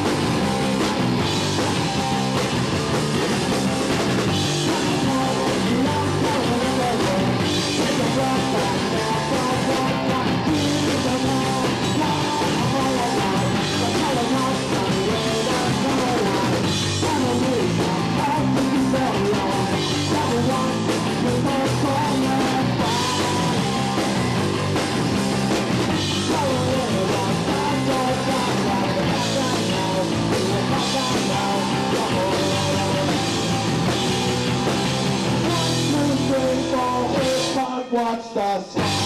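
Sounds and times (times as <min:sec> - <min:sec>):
punk rock band playing: 0:00.0 - 0:39.0
man singing: 0:04.3 - 0:24.3, 0:25.9 - 0:33.9, 0:35.2 - 0:39.0.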